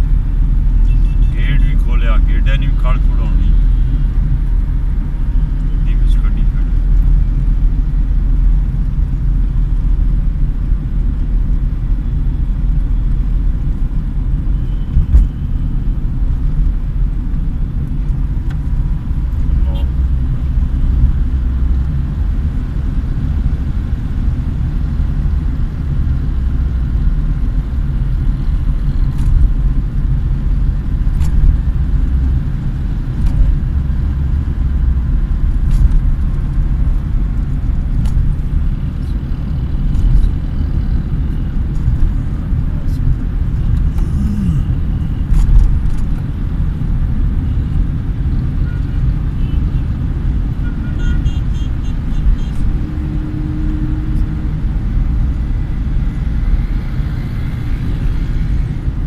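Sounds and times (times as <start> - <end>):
car engine and tyres rumbling: 0.0 - 59.0.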